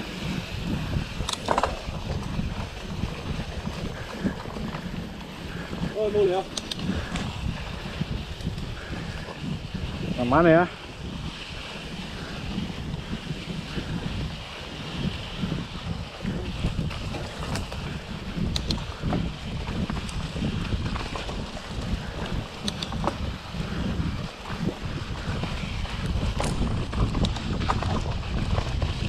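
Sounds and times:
bike clicks and rattles: 0.0s - 29.0s
wind rushing over microphone: 0.0s - 29.0s.

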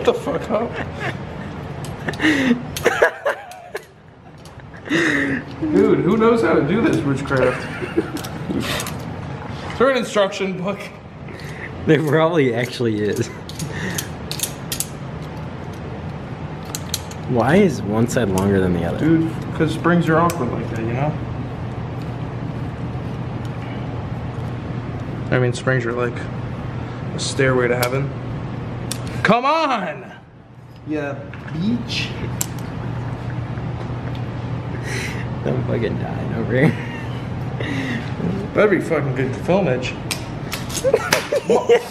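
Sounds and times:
steady low hum: 0.0s - 41.9s
metal tool clicking: 12.1s - 15.3s, 16.6s - 17.3s.

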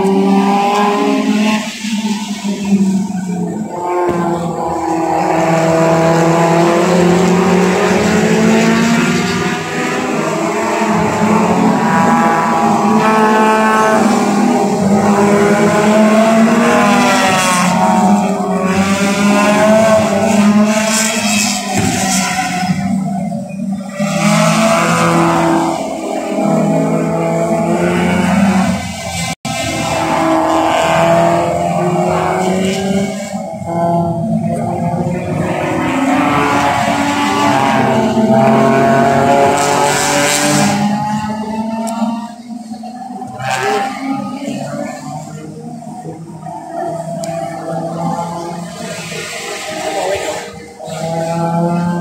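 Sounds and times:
race car engines revving past: 0.0s - 52.0s.

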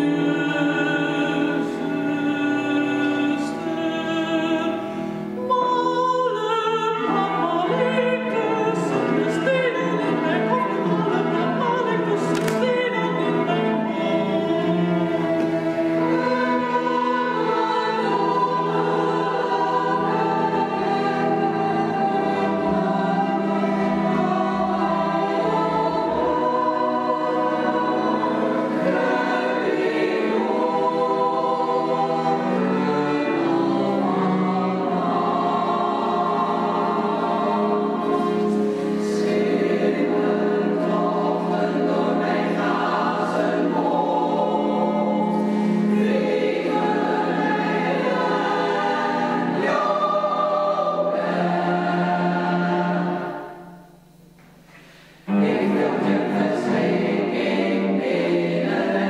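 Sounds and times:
women's choir singing: 0.0s - 54.2s, 54.8s - 59.0s
cellos: 0.0s - 59.0s.

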